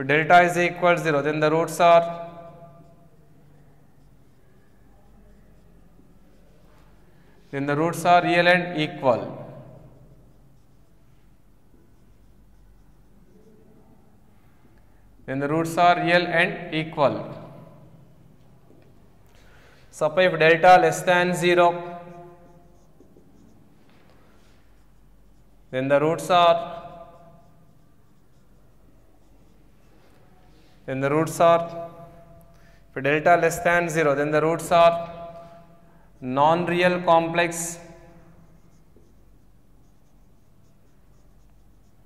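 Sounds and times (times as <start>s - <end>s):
marker writing on whiteboard: 0.1s - 42.0s.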